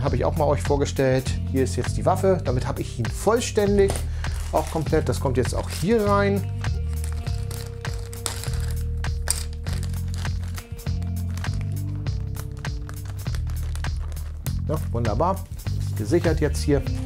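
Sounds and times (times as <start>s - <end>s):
background music with bass line: 0.0s - 17.0s
plastic bag crinkling: 3.8s - 15.0s.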